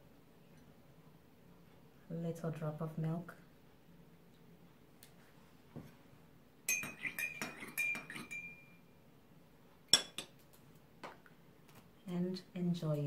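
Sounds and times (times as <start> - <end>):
spoon clink on saucer: 6.7 - 8.8
teaspoon clinking in teacup: 6.7 - 8.8.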